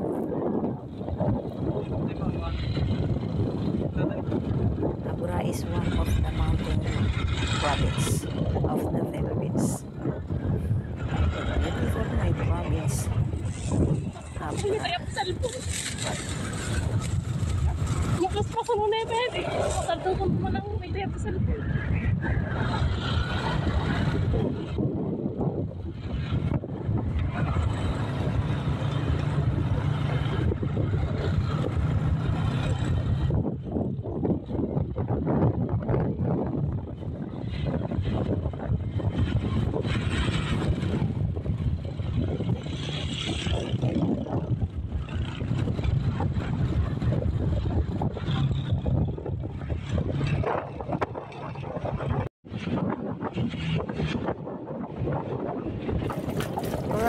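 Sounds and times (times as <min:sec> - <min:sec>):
vehicle engine and road noise: 0:00.0 - 0:57.0
wind buffeting microphone: 0:00.0 - 0:57.0.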